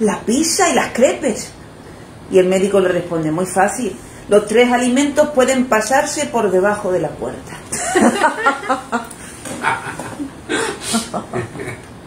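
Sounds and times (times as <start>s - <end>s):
people laughing: 7.7s - 11.9s.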